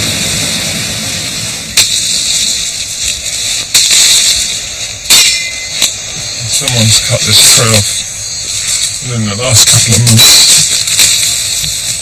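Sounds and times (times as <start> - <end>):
sharp cracks: 0.0 - 12.0
steady high hiss: 0.0 - 12.0.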